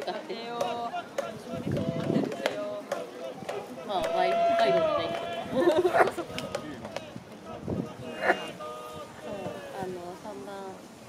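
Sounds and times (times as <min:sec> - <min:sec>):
spectators talking and calling out: 0:00.0 - 0:10.9
long drawn-out shout: 0:03.0 - 0:09.8.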